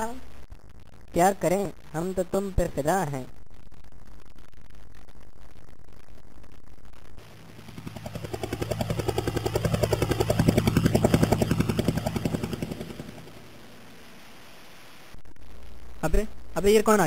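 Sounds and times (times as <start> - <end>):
helicopter rotor blades chopping: 7.2 - 14.0.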